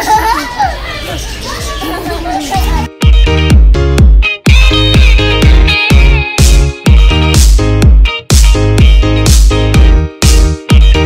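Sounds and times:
children chattering: 0.0 - 2.9
music playing: 1.2 - 11.0.

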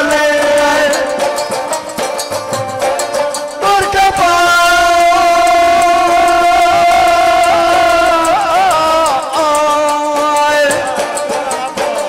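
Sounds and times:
person singing long high note: 3.6 - 12.0.

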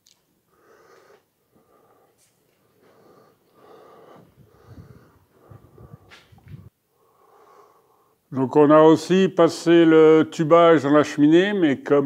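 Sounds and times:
person breathing: 0.5 - 8.3
footsteps: 1.0 - 6.7.

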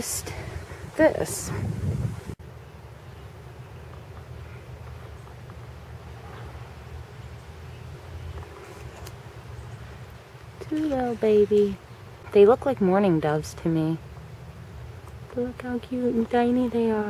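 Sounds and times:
wind buffeting microphone: 0.0 - 2.4.

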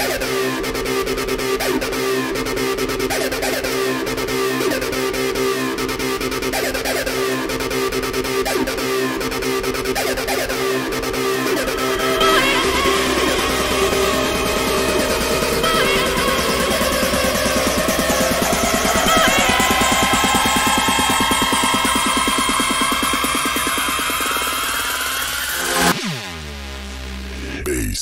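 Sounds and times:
hardstyle electronic dance music: 0.0 - 26.1, 27.2 - 28.0
rising synth sweep: 11.0 - 27.5
falling synth sweep: 11.2 - 27.4.

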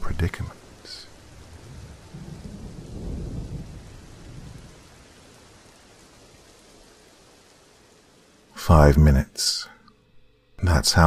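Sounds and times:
low rumble of thunder: 0.0 - 8.0
rain hissing: 0.0 - 11.0.

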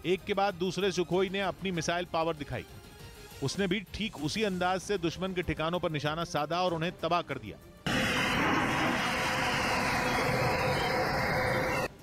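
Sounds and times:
rockets firing with loud rushing: 7.9 - 11.7
jet engine noise: 7.9 - 12.0.

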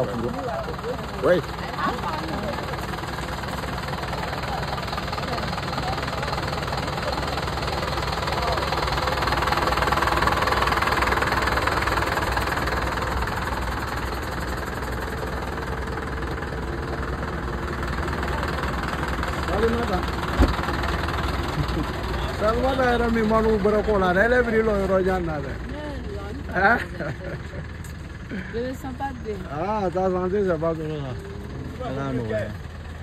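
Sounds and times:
vehicle engine idling: 0.0 - 33.0.

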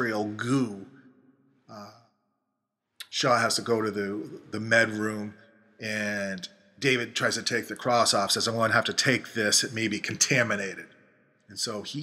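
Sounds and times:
man saying uh: 0.0 - 0.8, 3.0 - 10.8, 11.6 - 12.0.

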